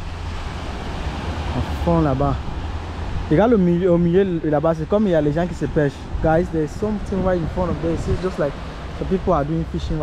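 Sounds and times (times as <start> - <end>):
small waves breaking on beach: 0.0 - 10.0
wind buffeting microphone: 0.0 - 10.0.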